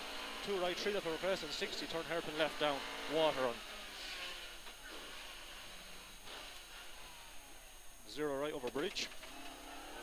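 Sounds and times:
muffled car engine: 0.0 - 10.0.

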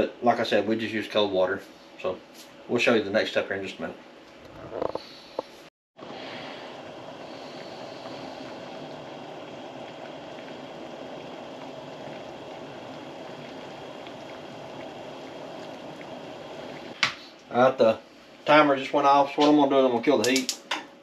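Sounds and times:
faint even hum: 0.0 - 20.2
water boiling and bubbling: 6.0 - 19.3.

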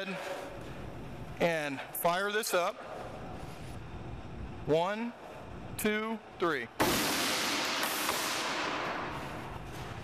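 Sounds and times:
airbag deployment bang: 6.8 - 9.1.

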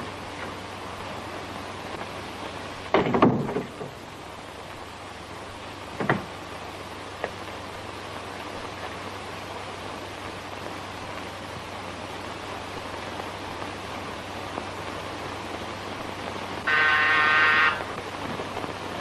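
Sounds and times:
film soundtrack hiss: 0.0 - 19.0.

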